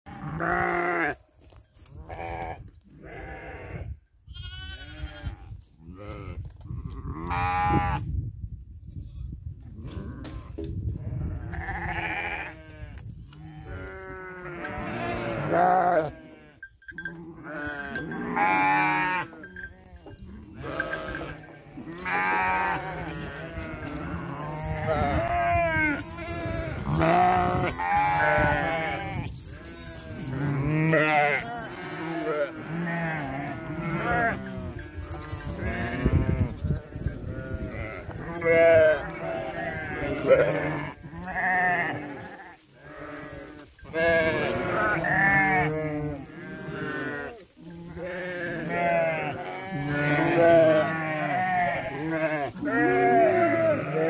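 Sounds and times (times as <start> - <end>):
sheep bleating: 0.1 - 1.2, 2.0 - 6.4, 7.0 - 8.0, 11.2 - 54.0.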